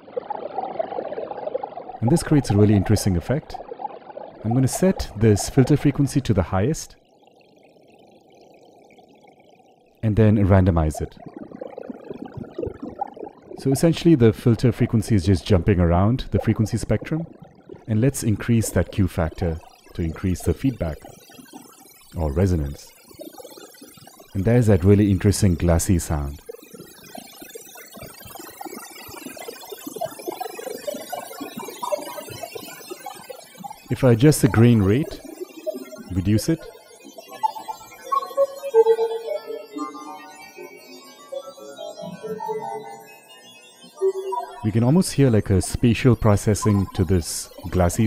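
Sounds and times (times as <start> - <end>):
glassy granular synth grains: 7.4 - 48.0
faint grainy synthesizer texture: 22.1 - 23.0, 33.8 - 48.0.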